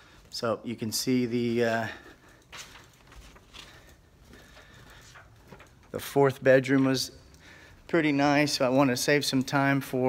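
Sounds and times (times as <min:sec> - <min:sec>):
man's voice: 0:00.3 - 0:02.2, 0:05.9 - 0:07.2, 0:07.9 - 0:10.0.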